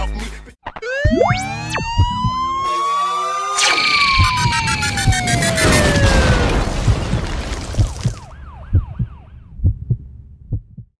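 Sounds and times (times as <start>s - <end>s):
wailing siren: 0.8s - 6.7s, 8.2s - 9.6s
heartbeat thumps: 1.0s - 2.6s, 4.2s - 5.4s, 7.8s - 11.0s.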